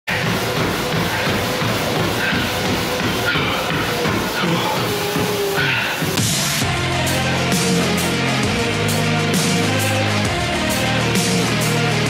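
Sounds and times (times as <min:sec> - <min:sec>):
loud music: 0:00.1 - 0:12.0.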